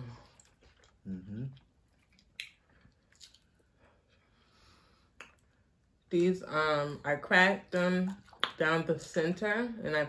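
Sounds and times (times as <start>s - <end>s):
mouth clicks and smacks chewing: 0.3s - 3.7s, 5.2s - 5.6s.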